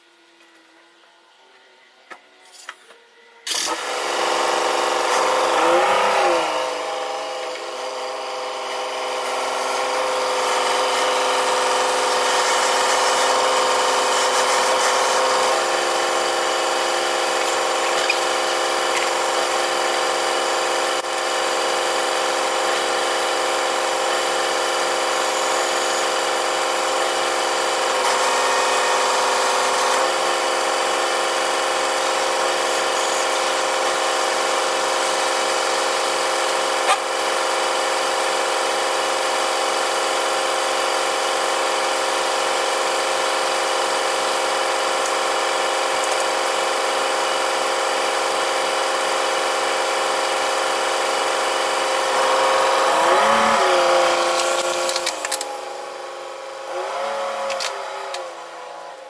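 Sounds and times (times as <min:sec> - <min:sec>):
engine whir: 0:02.4 - 0:23.4, 0:49.4 - 0:59.0
sharp click: 0:54.4 - 0:55.5, 0:57.5 - 0:58.3.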